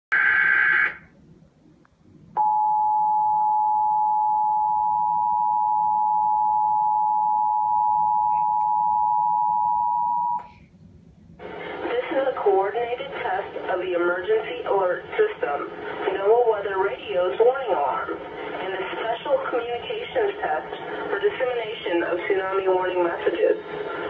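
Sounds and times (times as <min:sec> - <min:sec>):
two-tone alarm: 0:02.4 - 0:10.5.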